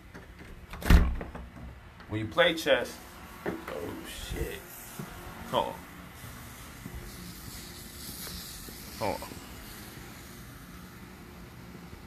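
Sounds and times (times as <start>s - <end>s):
door thump: 0.7s - 1.5s.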